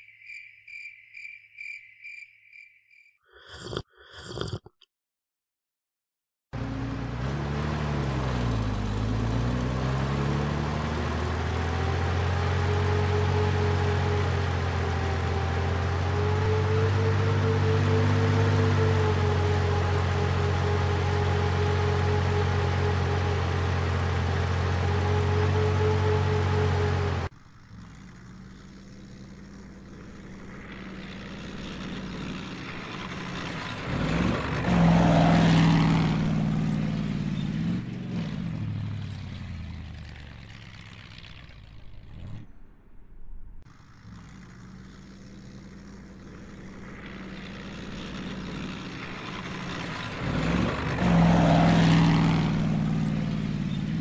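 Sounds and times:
bulldozer engine running: 6.6 - 42.3, 43.6 - 54.0
distant engine: 6.6 - 54.0.

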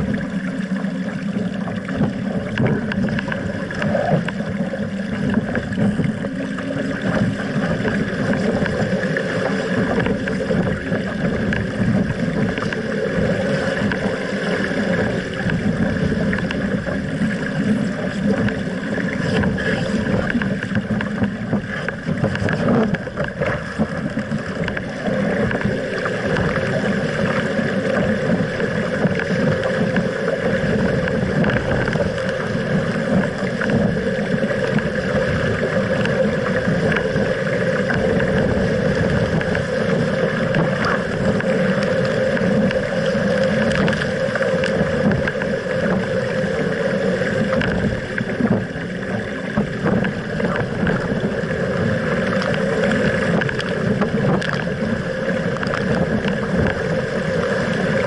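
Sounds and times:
water rushing along hull: 0.0 - 58.0
wind noise on microphone: 1.4 - 58.0.

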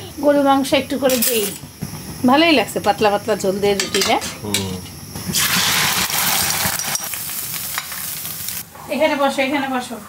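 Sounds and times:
curry sizzling in a pot: 0.7 - 8.7
metal spoon stirring: 6.3 - 7.1.

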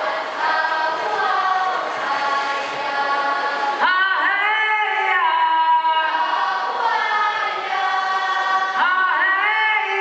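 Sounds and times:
children's choir singing: 0.0 - 10.0.

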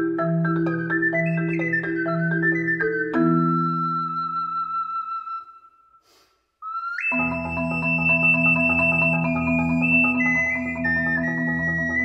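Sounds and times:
marimba rolled chords: 0.0 - 4.3
ocarina melody: 0.0 - 6.0, 6.6 - 12.0.

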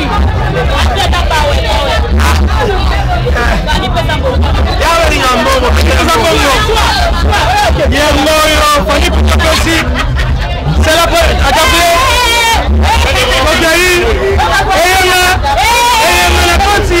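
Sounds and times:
crowd voices talking: 0.0 - 17.0
steady low rumble: 0.0 - 17.0.

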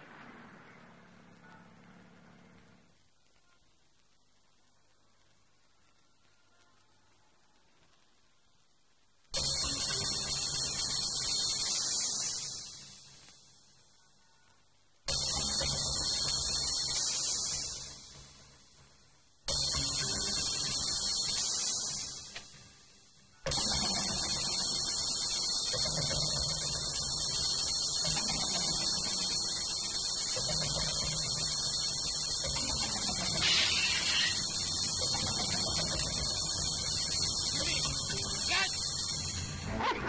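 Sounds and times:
steady hum and hiss: 0.0 - 39.7.

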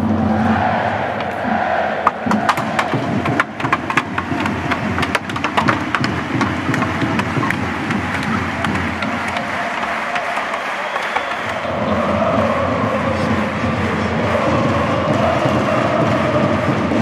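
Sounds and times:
crowd cheering: 0.0 - 17.0
sharp irregular knocks: 2.0 - 11.7.

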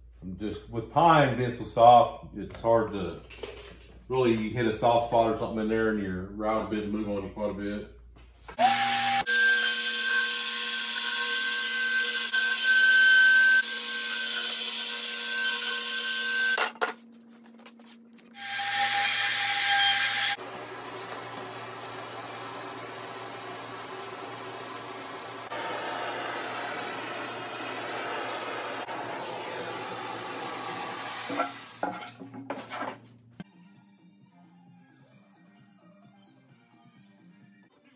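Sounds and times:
router high whine: 19.9 - 31.4.

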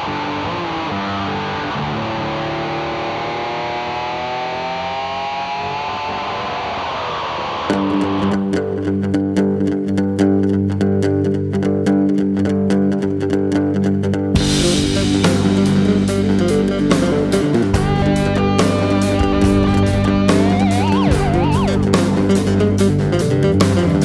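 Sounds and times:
instrumental rock on guitars and bass: 0.0 - 24.0.

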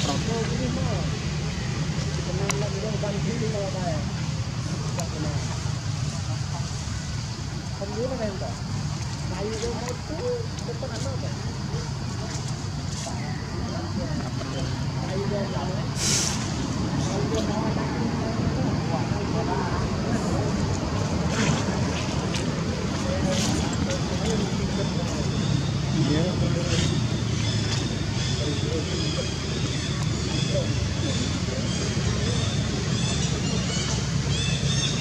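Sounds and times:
faint indistinct voices: 0.0 - 35.0
short burst of hiss: 16.0 - 16.6.

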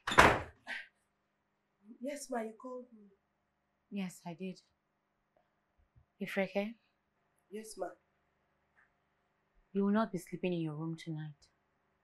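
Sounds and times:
wooden door thudding shut: 0.0 - 0.6.

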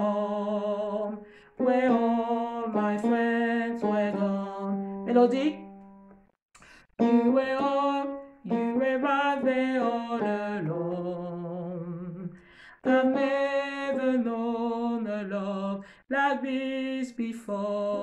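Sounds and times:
woman singing gospel melody: 0.0 - 5.7, 7.0 - 18.0.

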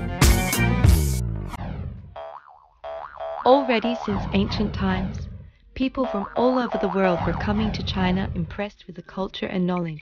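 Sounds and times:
background music: 0.0 - 1.6
brief warbling tone: 1.6 - 5.2, 6.0 - 8.4.

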